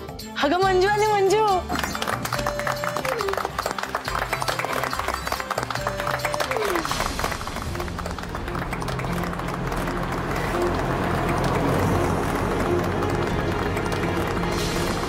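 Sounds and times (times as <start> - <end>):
background music: 0.0 - 15.0
people clapping rapidly: 1.6 - 15.0
motor scooters droning: 9.2 - 15.0.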